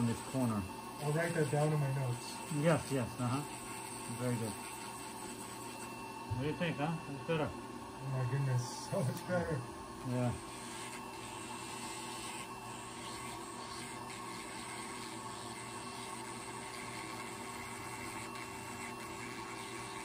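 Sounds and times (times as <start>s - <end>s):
electric nail drill grinding: 0.0s - 20.0s.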